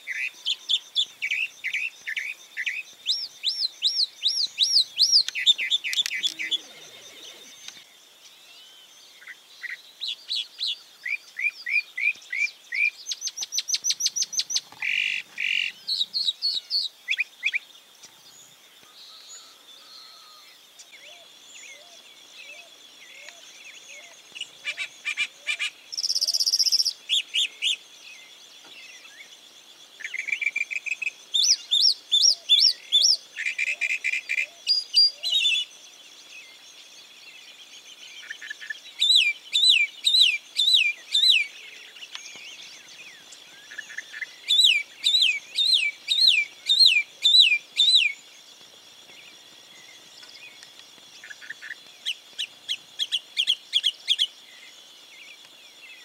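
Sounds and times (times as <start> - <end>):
mockingbird singing: 0.1 - 7.8, 38.2 - 48.3
faint steady high tone: 6.0 - 7.8.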